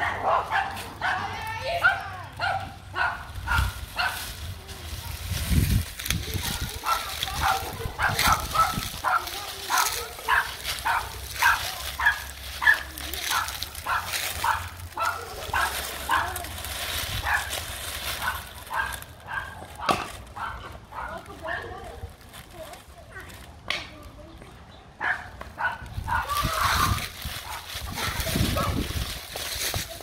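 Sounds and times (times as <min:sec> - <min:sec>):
small dog barking: 0:00.0 - 0:04.2, 0:06.5 - 0:16.4, 0:18.2 - 0:21.6, 0:25.0 - 0:28.9.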